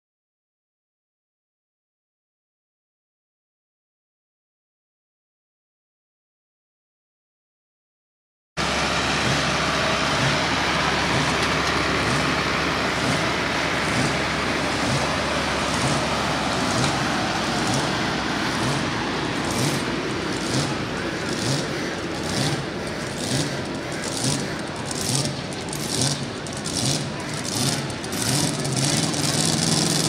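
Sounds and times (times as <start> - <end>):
loud tractor engine: 8.6 - 30.0.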